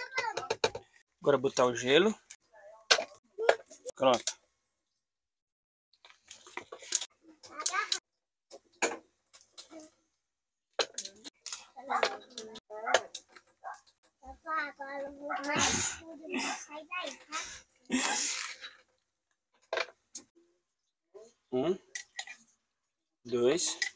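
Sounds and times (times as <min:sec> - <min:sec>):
young child's voice: 0:00.0 - 0:00.6, 0:07.4 - 0:08.0, 0:14.2 - 0:17.6.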